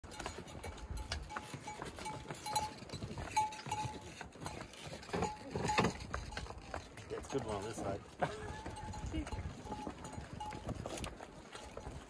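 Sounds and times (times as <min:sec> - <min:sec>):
hooves on stone steps: 0:00.0 - 0:12.0
mule neck bells ringing: 0:00.0 - 0:12.0.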